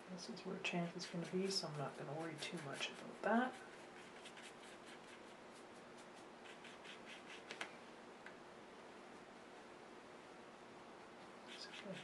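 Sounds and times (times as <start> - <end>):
paintbrush strokes on paper: 0.8 - 7.6.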